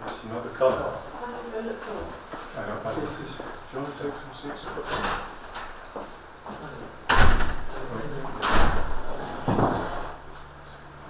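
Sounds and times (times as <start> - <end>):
heavy door thudding shut: 7.1 - 9.8.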